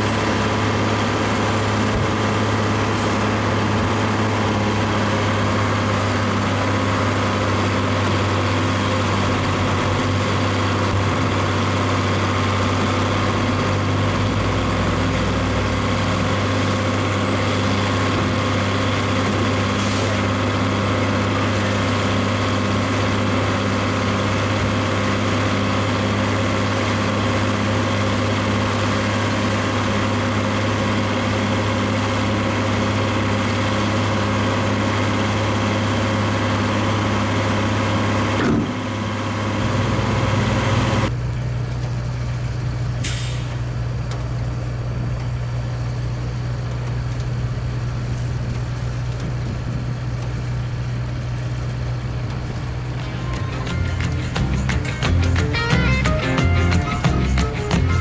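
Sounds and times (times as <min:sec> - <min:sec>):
tractor engine running: 0:00.0 - 0:58.0
machinery humming: 0:50.8 - 0:58.0.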